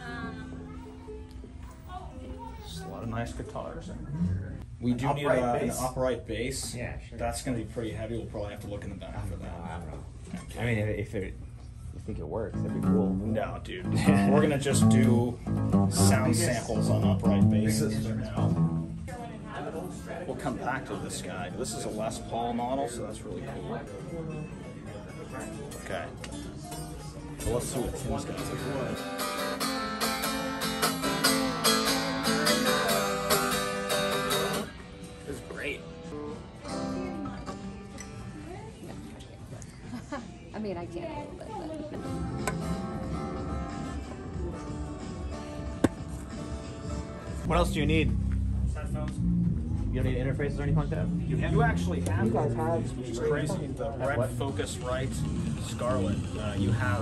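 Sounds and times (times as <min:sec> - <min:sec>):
guitar strummed chords: 0:12.5 - 0:19.1, 0:26.7 - 0:38.2, 0:42.0 - 0:53.2
acoustic bass guitar note: 0:12.5 - 0:19.2, 0:47.4 - 0:53.4.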